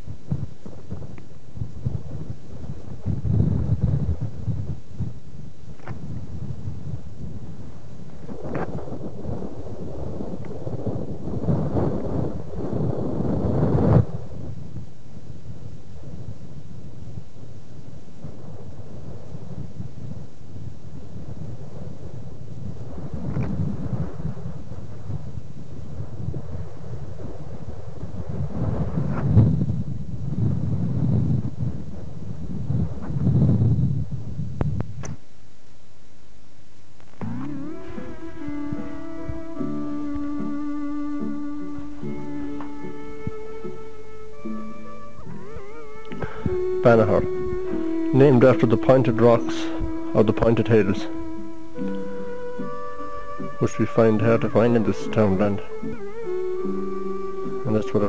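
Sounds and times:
wind buffeting microphone: 0.0s - 35.3s, 37.1s - 58.0s.

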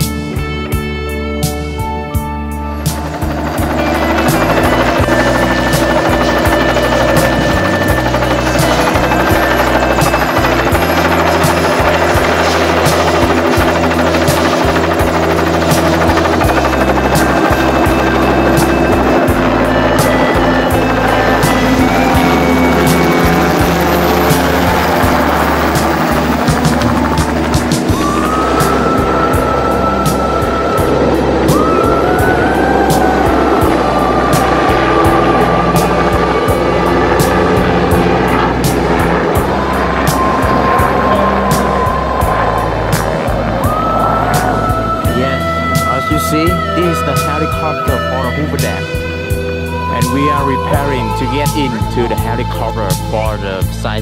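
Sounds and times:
background music with bass line: 0.0s - 54.0s
helicopter rotor and engine: 0.0s - 54.0s.

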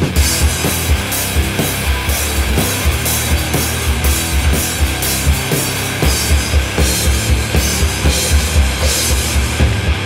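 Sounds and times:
heavy distorted rock band: 0.0s - 10.0s
rapid kick drum hits: 0.0s - 10.0s.

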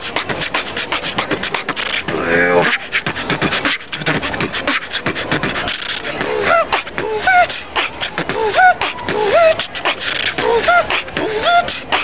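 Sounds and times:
human beatboxing: 0.0s - 12.0s.

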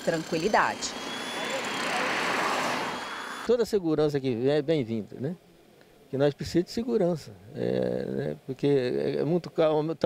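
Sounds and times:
car passing on highway: 0.0s - 3.5s.

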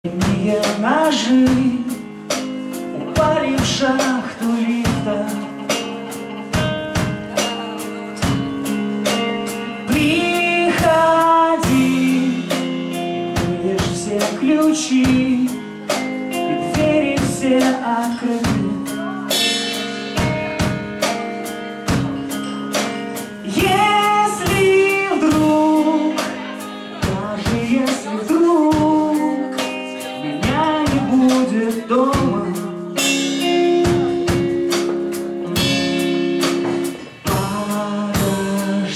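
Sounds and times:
man singing: 0.0s - 6.2s, 7.0s - 20.3s, 23.1s - 38.9s
electric guitar chords: 0.0s - 38.9s
live rock band playing: 0.0s - 38.9s
drum and cymbal hits: 0.1s - 38.9s.

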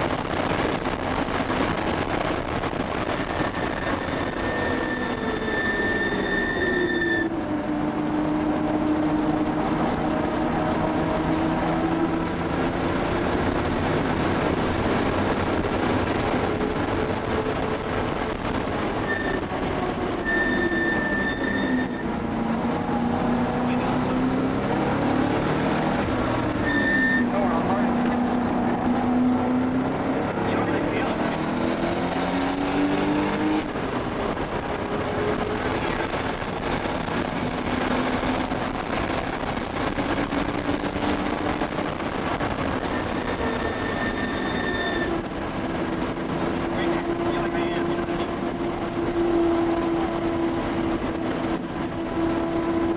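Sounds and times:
car engine revving: 0.0s - 52.9s.

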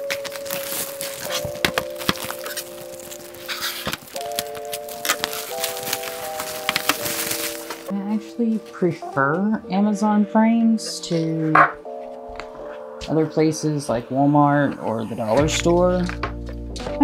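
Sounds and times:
slow held chords music: 0.0s - 17.0s.

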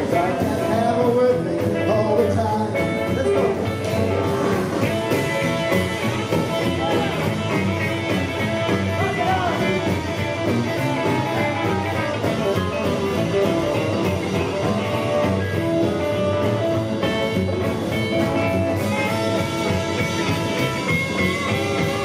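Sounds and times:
rockabilly band playing instrumental: 0.0s - 22.0s.

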